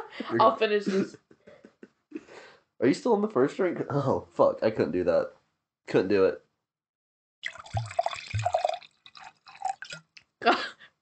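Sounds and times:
person gulping a drink: 7.4 - 10.2.

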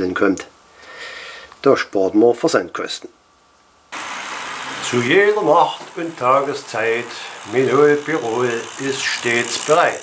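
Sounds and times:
person speaking: 4.8 - 10.0.

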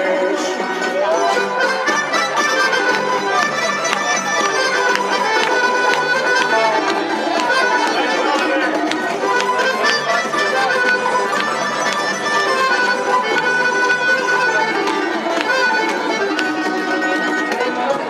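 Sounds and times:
accordion: 0.0 - 18.0
cajon beat: 0.0 - 18.0
plucked string instruments: 0.0 - 18.0
strummed acoustic guitar: 0.0 - 18.0
upright bass: 0.0 - 18.0.

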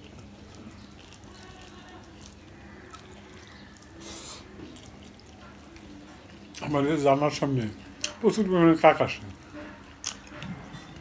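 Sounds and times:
fingers mixing puffed rice: 0.0 - 11.0.

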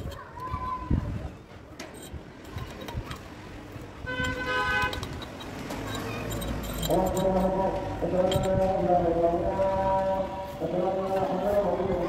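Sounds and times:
vehicle horn: 4.0 - 5.2.

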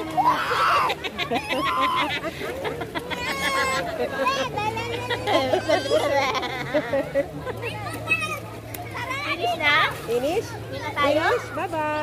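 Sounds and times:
children's voices and calls: 0.0 - 12.0.

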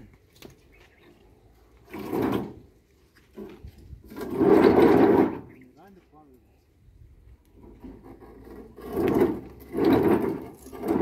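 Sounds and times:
stone posts scraping against stone: 1.7 - 5.7, 7.5 - 11.0.

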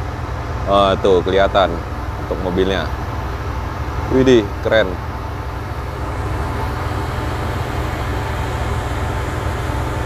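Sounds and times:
ship engine drone: 0.0 - 10.0.

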